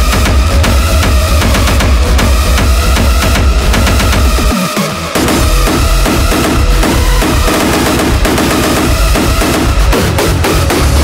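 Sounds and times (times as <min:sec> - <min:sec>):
distorted kick drums: 0:00.0 - 0:11.0
electronic hardcore dance music: 0:00.0 - 0:11.0.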